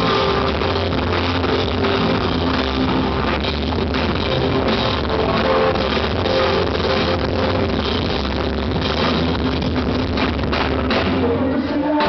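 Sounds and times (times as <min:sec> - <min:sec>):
rock band playing instrumental: 0:00.0 - 0:12.0.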